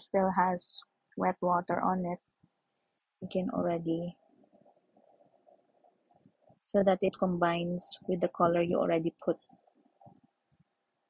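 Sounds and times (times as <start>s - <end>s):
woman's voice: 0.0s - 2.2s, 3.2s - 4.2s, 6.6s - 9.4s.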